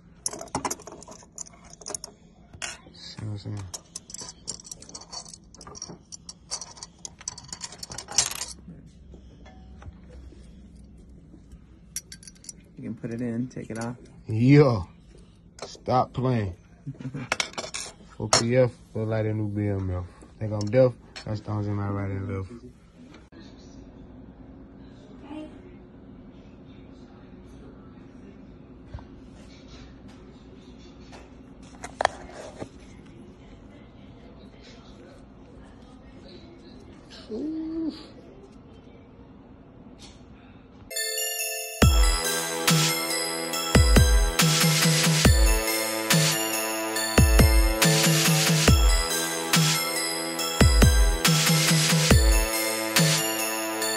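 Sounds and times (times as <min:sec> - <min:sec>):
metal chain pendants clinking: 0:03.7 - 0:08.6, 0:12.0 - 0:12.7.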